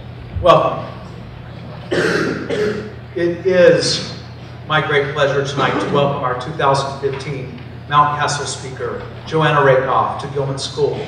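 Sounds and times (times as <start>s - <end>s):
man clearing his throat: 1.9s - 3.0s, 5.6s - 6.2s.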